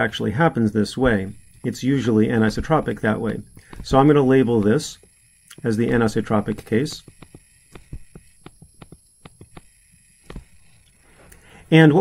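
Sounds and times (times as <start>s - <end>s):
stylus tapping on tablet screen: 1.0s - 5.1s, 5.8s - 10.6s.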